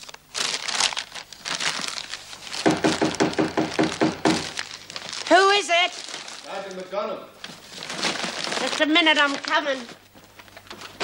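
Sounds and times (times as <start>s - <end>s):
paper crumpling and rustling: 0.0s - 6.8s, 7.4s - 11.0s.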